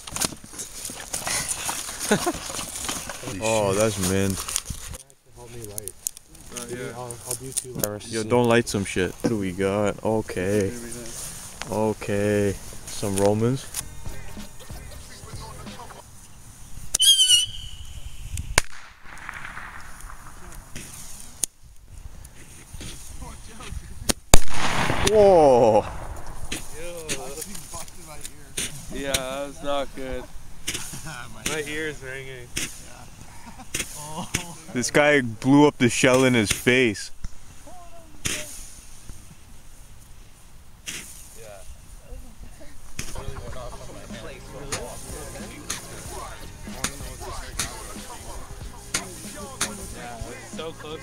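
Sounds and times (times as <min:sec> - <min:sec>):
firework whistle: 0:16.9 - 0:18.9
firework pops: 0:16.9 - 0:21.5, 0:24.0 - 0:27.9.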